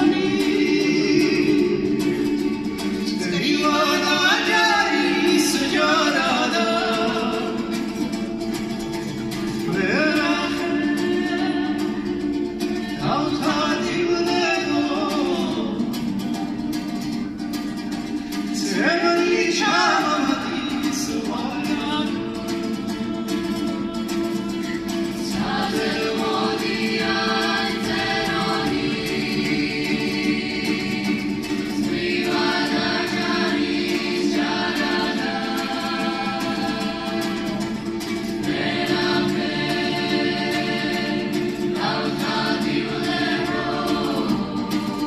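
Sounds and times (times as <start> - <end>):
mixed choir singing in harmony: 0.0 - 16.1, 18.1 - 45.0.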